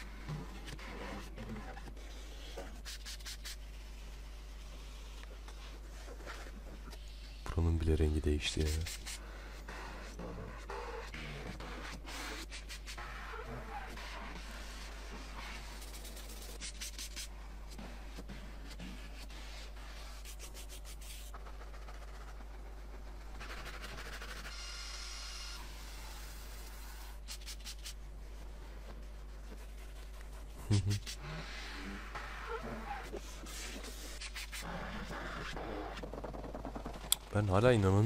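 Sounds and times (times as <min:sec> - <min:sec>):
cloth rubbing on car trim: 0:00.0 - 0:07.4, 0:08.6 - 0:38.0.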